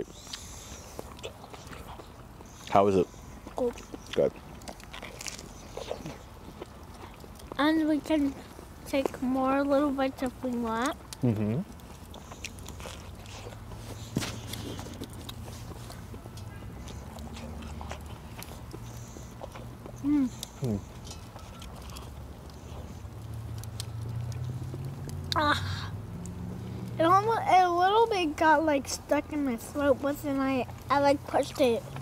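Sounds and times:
wood fire crackling: 0.0s - 32.0s.

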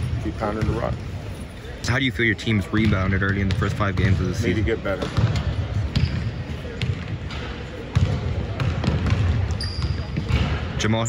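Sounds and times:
basketballs bouncing on hardwood: 2.7s - 4.4s, 7.9s - 10.6s.

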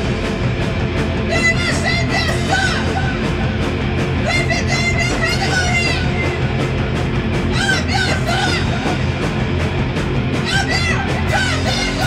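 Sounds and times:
noise punk band playing: 0.0s - 12.0s.

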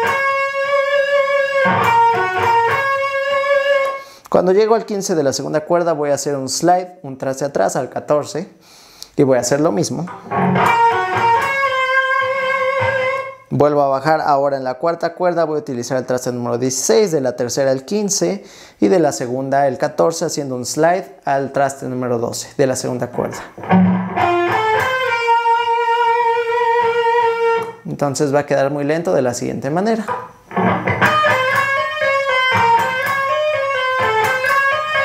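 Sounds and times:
electric guitar lead phrase: 0.0s - 4.2s, 10.1s - 13.5s, 23.6s - 27.8s, 30.0s - 35.0s.

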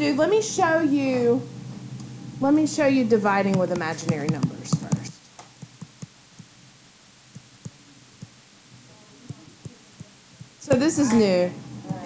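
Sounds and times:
steady hiss and hum: 0.0s - 12.0s
stylus tapping on whiteboard: 3.5s - 6.5s, 9.3s - 11.2s.

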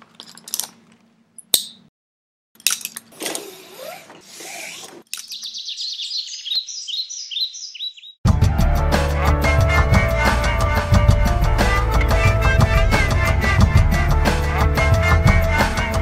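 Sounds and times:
high bird-like chirps: 5.1s - 8.2s.

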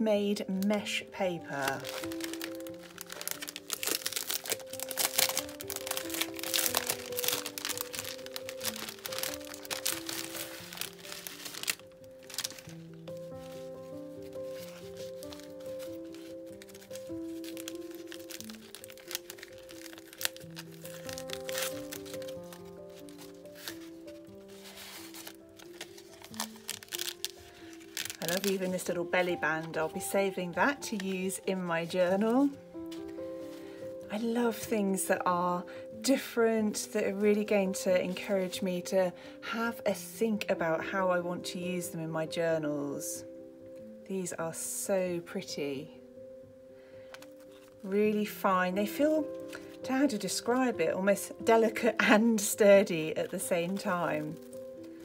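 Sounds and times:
soft background music: 0.0s - 55.0s
cellophane bag crinkling: 0.6s - 34.0s, 47.1s - 47.9s, 49.2s - 50.4s, 53.2s - 55.0s.

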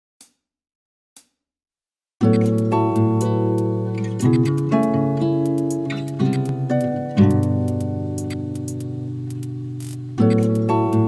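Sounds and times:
crisp ticks: 4.0s - 11.0s.

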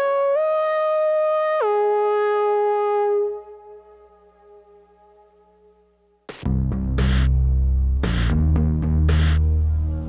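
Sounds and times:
buzzy synthesizer note: 3.1s - 10.0s.

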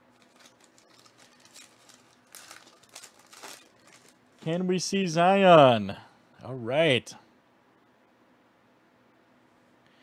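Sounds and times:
foil card pack tearing: 0.0s - 4.2s
packet rustling: 0.0s - 4.5s.

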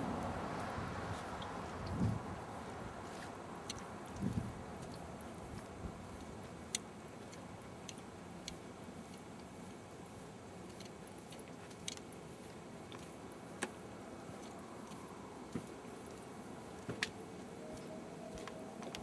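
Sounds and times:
outdoor background hiss: 0.0s - 19.0s.

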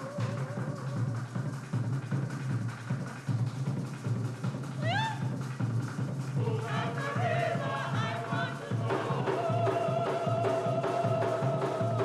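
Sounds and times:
hand drums beating: 0.0s - 12.0s.

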